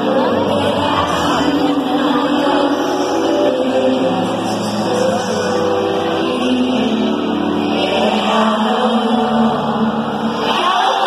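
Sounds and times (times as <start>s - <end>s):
live pop band music: 0.0s - 11.0s
voices singing held notes: 0.0s - 11.0s.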